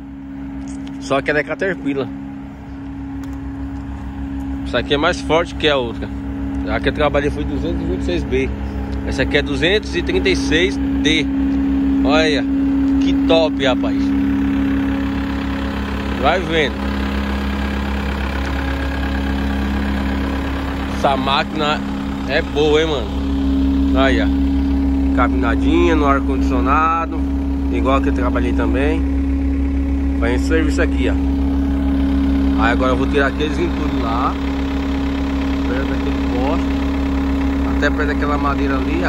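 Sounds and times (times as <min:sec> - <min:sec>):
diesel engine idling: 0:00.0 - 0:39.0.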